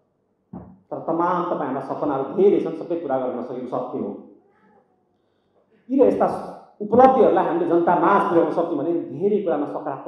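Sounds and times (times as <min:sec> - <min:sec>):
man speaking: 0:00.9 - 0:04.2, 0:05.9 - 0:10.0.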